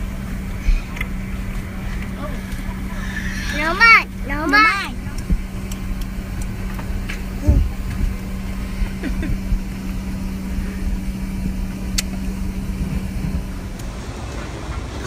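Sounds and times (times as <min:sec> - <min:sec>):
airliner cabin drone: 0:00.0 - 0:15.0.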